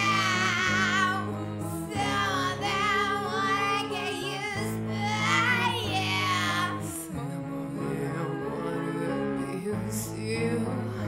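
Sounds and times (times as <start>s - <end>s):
women singing a cappella: 0.0s - 11.0s.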